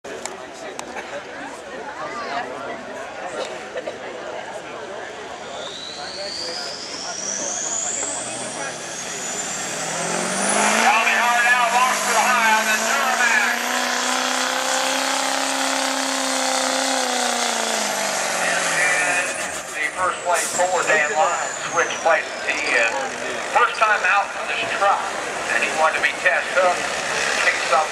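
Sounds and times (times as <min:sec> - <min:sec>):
diesel engine under load: 0:05.1 - 0:27.9
turbo whine: 0:05.7 - 0:24.8.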